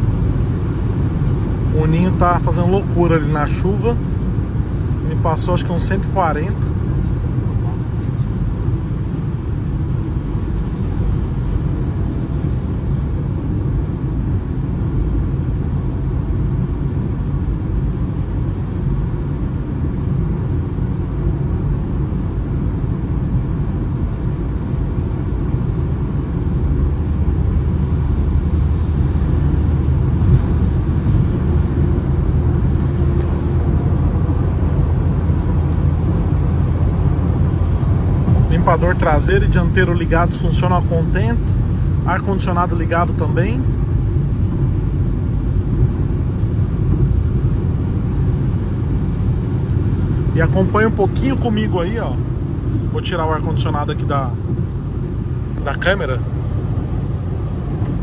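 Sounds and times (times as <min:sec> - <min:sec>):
car engine drone: 0:00.0 - 0:58.0
tyre and road noise: 0:00.0 - 0:58.0.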